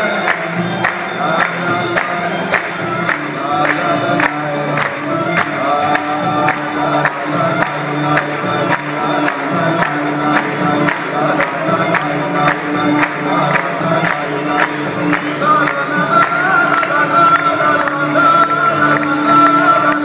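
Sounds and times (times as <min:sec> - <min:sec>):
choir singing: 0:00.0 - 0:20.0
man singing: 0:00.0 - 0:20.0
orchestral strings: 0:00.0 - 0:20.0
sharp percussive strikes: 0:00.0 - 0:20.0.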